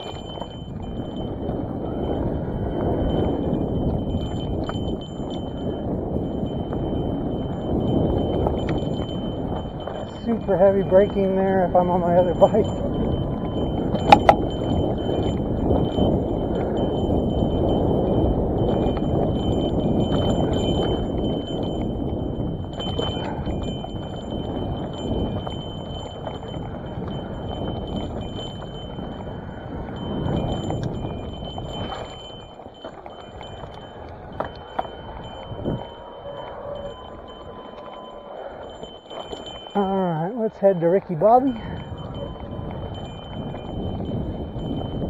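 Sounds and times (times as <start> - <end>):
bike rattling over bumps: 0.0 - 39.8, 40.5 - 45.0.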